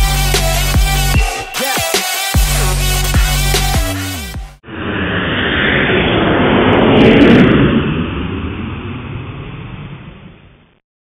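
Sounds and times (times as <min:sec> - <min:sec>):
jet airliner flying by: 0:04.6 - 0:10.8.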